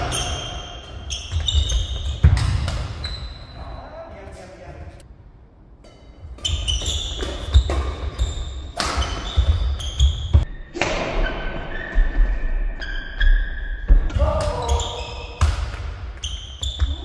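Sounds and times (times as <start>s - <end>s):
racket hitting shuttlecock: 0.0s - 3.2s, 5.8s - 11.4s
sneakers squeaking on floor: 0.0s - 5.0s, 6.2s - 17.0s.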